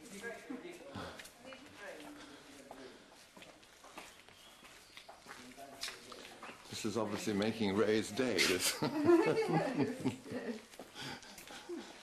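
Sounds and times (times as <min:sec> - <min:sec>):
faint footsteps on concrete: 0:00.0 - 0:12.0.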